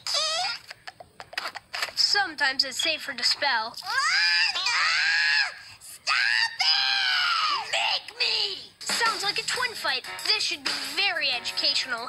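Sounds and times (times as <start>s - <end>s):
cartoon baby screaming: 3.8s - 7.8s.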